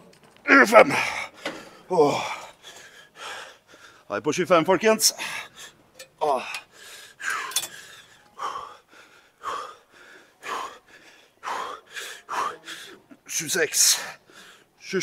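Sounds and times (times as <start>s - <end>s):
man panting for breath: 1.1s - 4.1s, 6.4s - 13.0s
man groaning: 1.9s - 2.4s, 6.2s - 6.6s.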